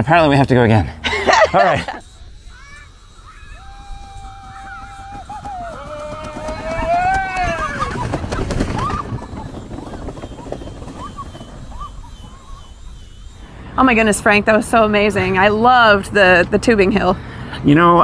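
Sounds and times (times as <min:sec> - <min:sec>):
people whooping: 0:01.3 - 0:13.4
wind on microphone: 0:02.1 - 0:16.0.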